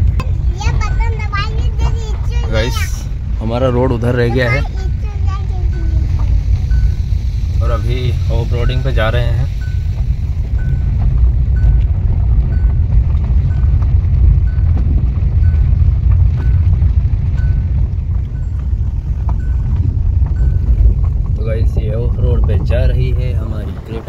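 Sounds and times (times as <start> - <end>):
tyres rumbling on gravel track: 0.0 - 24.0
wind noise: 0.0 - 24.0.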